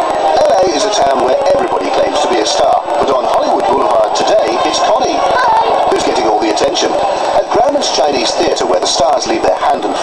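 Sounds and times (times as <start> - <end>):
television report: 0.0 - 10.0.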